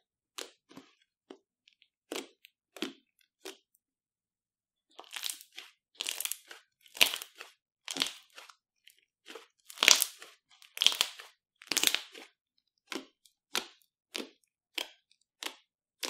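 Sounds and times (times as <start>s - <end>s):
slime squishing and popping: 5.0s - 8.6s, 9.2s - 15.7s.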